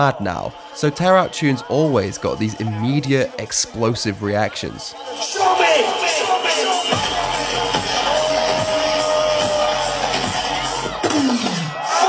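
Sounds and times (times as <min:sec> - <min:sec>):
crowd cheering: 0:00.0 - 0:12.0
dubstep music on sound system: 0:00.0 - 0:12.0.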